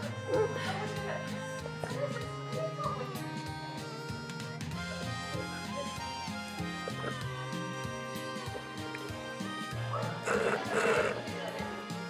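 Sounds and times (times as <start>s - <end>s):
background music: 0.0s - 12.0s
slurping drink through straw: 10.2s - 11.2s.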